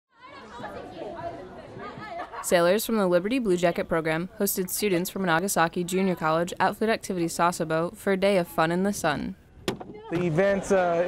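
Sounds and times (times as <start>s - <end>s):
group of people chattering: 0.2s - 11.0s.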